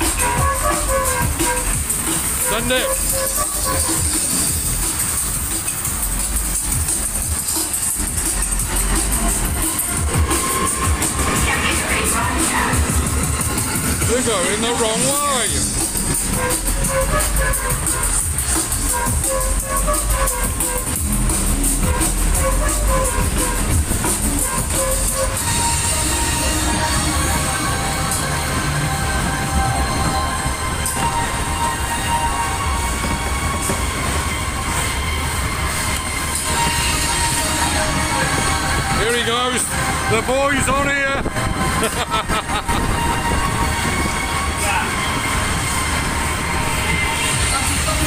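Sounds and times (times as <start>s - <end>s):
loud fairground music: 0.0s - 48.0s
rumble of spinning ride: 0.0s - 48.0s.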